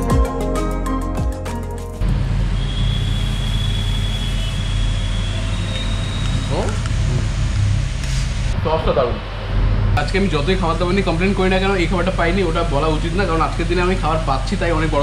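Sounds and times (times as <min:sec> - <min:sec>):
background music: 0:00.0 - 0:02.1.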